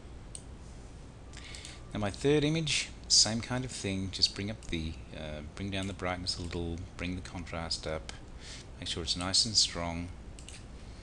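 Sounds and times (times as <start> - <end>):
faint low room hum: 0.0 - 11.0
computer mouse click: 10.4 - 10.6.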